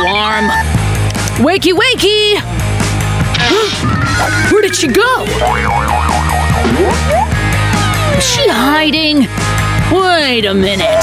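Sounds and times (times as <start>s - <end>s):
comedy background music: 0.0s - 11.0s
cartoon boing sound effects: 5.3s - 7.3s.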